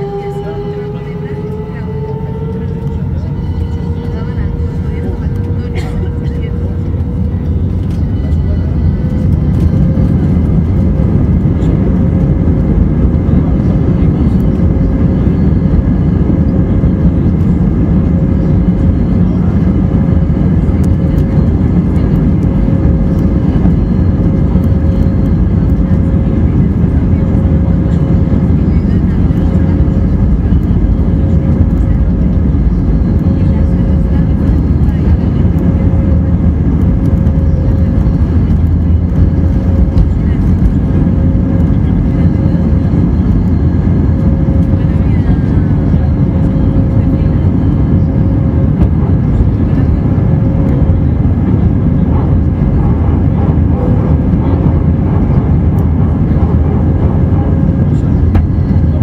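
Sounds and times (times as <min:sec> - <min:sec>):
low rumble of jet engines: 0:00.0 - 0:59.0.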